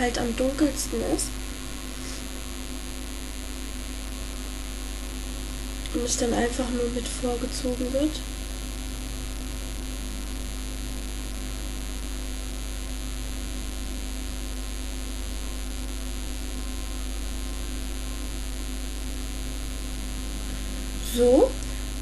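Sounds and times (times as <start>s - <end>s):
electrical mains hum: 0.0s - 22.0s.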